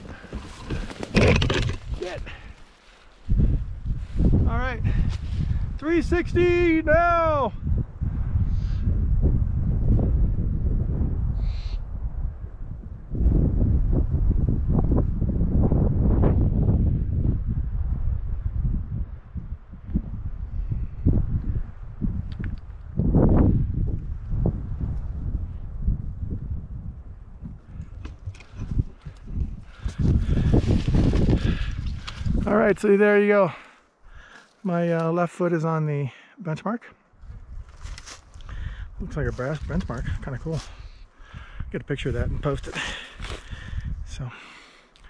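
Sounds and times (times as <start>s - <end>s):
brush rustling: 0.0s - 4.4s, 28.4s - 32.4s, 37.3s - 38.5s
wind buffeting microphone: 0.0s - 32.9s, 37.1s - 44.3s.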